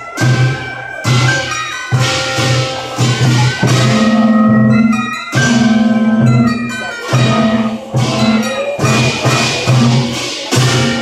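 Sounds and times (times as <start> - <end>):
drum beats: 0.0 - 11.0
reedy shawm melody: 0.0 - 11.0
cymbal and gong crashes: 0.2 - 11.0.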